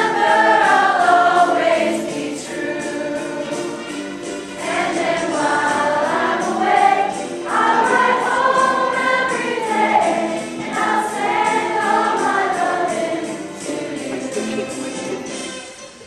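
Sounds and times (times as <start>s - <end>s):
choir singing pop song: 0.0s - 14.7s
steady beat accompaniment: 0.0s - 16.0s.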